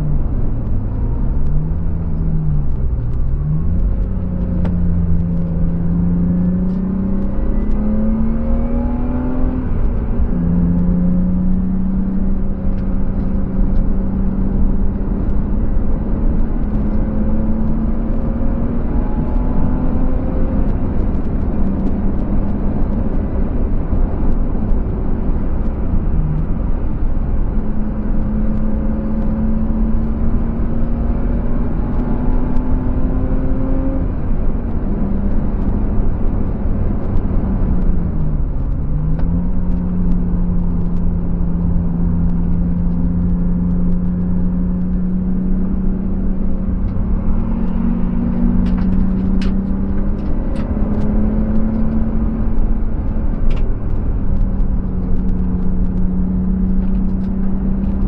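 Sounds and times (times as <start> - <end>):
car engine revving: 0.0 - 58.0
wind noise: 0.0 - 58.0.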